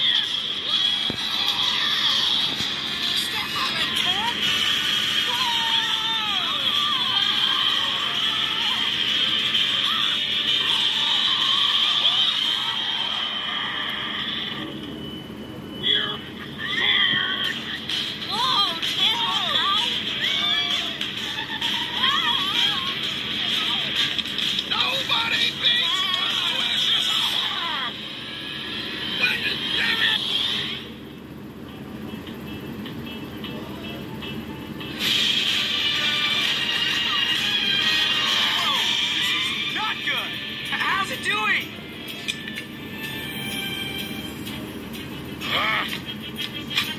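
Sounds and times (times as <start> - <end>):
film music: 17.5 - 46.9.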